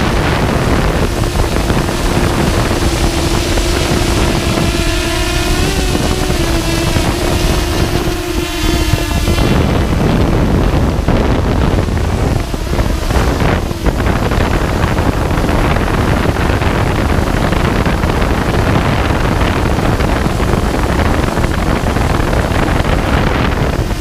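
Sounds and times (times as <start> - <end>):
drone propellers whirring: 0.0 - 24.0
wind rush over microphone: 0.0 - 24.0.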